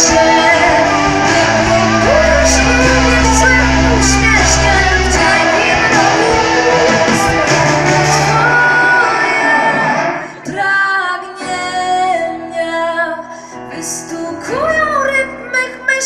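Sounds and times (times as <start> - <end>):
live rock band: 0.0 - 10.6
woman singing: 0.0 - 16.0.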